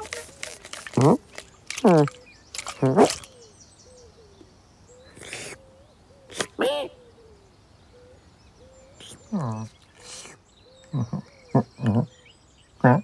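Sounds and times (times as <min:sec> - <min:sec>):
faint bird calls: 0:00.0 - 0:13.0.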